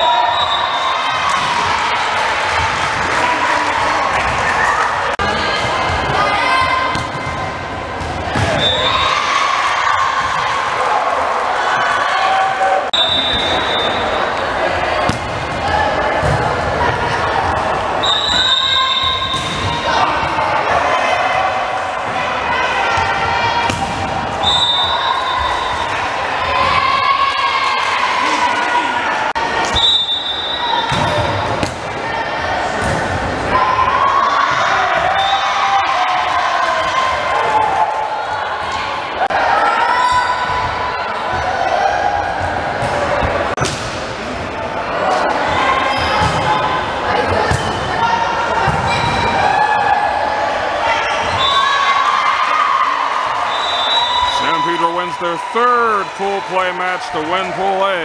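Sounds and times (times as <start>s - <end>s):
referee's whistle: 0.0s - 1.1s, 8.5s - 9.0s, 12.9s - 14.1s, 18.0s - 19.5s, 24.4s - 25.8s, 29.7s - 31.1s, 51.4s - 51.8s, 53.5s - 58.0s
people shouting and cheering: 0.0s - 43.6s, 44.5s - 58.0s.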